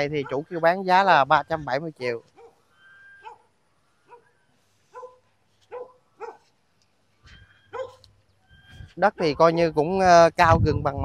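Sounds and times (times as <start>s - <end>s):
dog barking: 0.2s - 0.6s, 2.4s - 2.6s, 3.2s - 3.5s, 4.1s - 4.3s, 4.9s - 6.5s, 7.7s - 8.1s.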